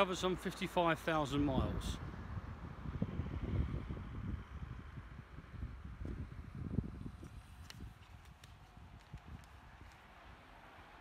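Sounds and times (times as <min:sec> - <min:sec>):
wind rumble: 0:00.0 - 0:11.0.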